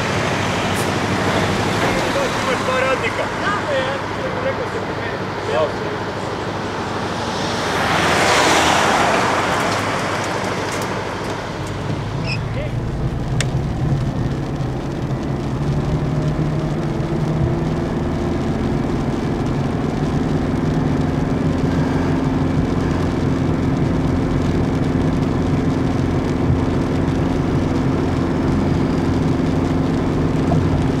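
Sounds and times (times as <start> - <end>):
car engine hum: 0.0 - 31.0
tyre noise on wet road: 0.0 - 31.0.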